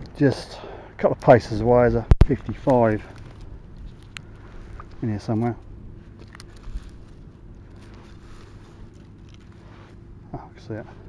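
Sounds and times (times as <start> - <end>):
wind rumbling on microphone: 1.5 - 9.4
hand rustling in soil: 2.4 - 10.2.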